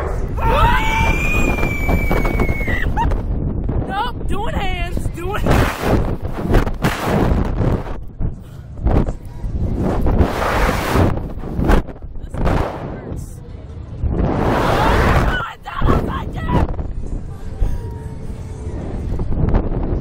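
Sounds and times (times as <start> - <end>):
steady low rumble: 0.0 - 20.0
wind buffeting microphone: 0.0 - 20.0
riders screaming: 0.4 - 3.0.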